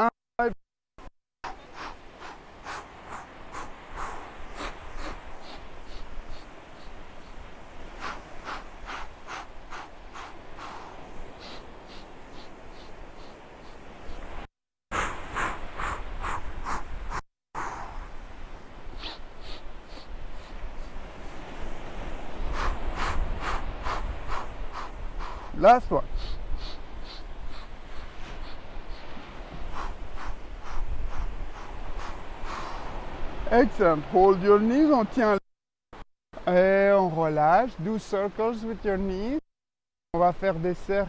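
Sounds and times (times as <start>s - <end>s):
person breathing in sharp puffs: 1.4s - 18.2s, 18.9s - 21.0s, 22.4s - 33.1s
man's short sharp breaths: 8.0s - 13.7s.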